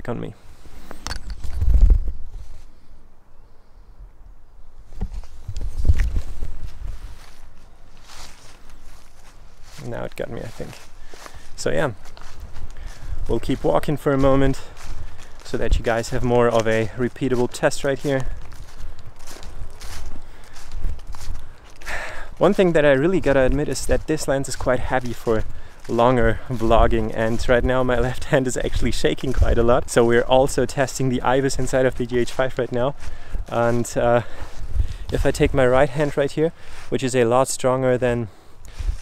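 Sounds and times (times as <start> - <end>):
footsteps on dry leaves: 0.4 - 2.9, 4.8 - 37.5, 38.7 - 39.0.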